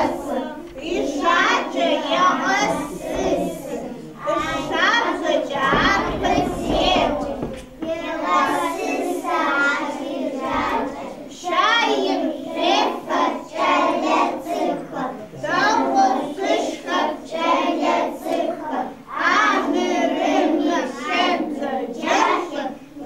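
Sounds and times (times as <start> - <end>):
children singing: 0.0 - 23.0.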